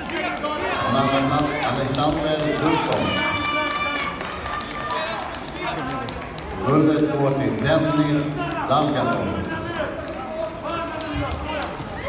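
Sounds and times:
people shouting coaching calls: 0.0 - 6.0.

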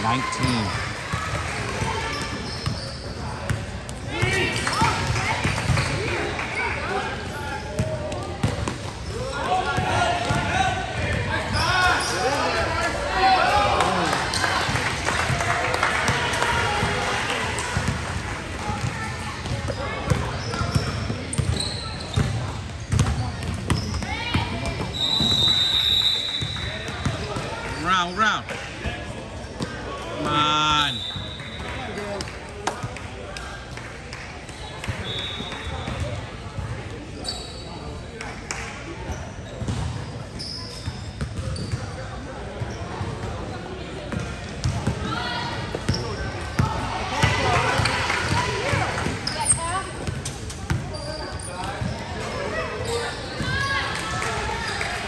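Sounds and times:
voices of players and spectators: 0.0 - 55.0
basketball bouncing on gym floor: 18.6 - 25.4.

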